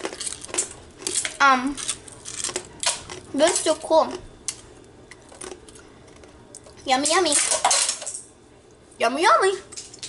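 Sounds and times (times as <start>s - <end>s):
girl speaking: 1.4s - 1.8s, 3.3s - 4.3s, 6.8s - 7.6s, 9.0s - 9.8s.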